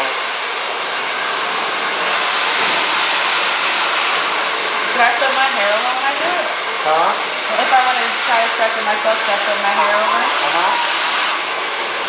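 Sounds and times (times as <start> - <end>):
hair dryer blowing air: 0.0 - 12.0.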